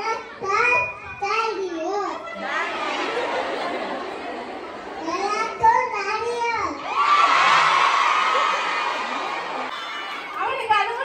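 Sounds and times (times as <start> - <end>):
large audience noise: 0.0 - 11.0.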